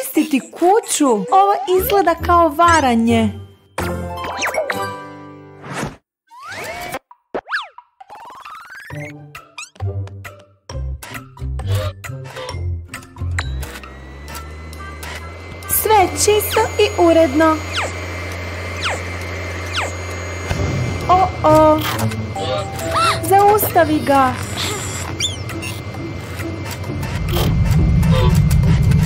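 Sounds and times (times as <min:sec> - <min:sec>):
vacuum cleaner motor hum: 0:13.2 - 0:29.0
cartoon whistle glide: 0:14.9 - 0:18.1, 0:18.7 - 0:25.8.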